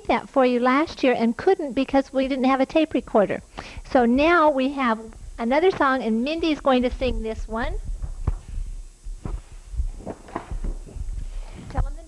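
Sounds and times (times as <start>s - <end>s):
low steady hum: 0.0s - 12.0s
microphone handling thumps: 3.6s - 12.0s.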